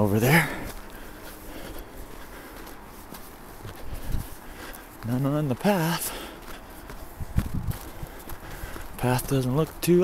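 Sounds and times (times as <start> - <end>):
footsteps on winter path: 0.0 - 10.0.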